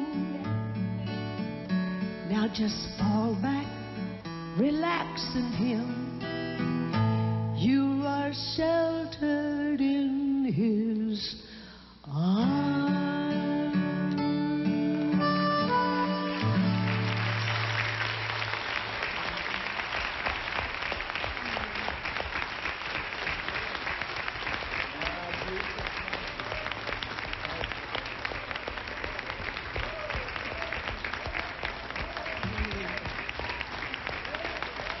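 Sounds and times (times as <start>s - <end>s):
audience applauding: 15.6s - 35.0s.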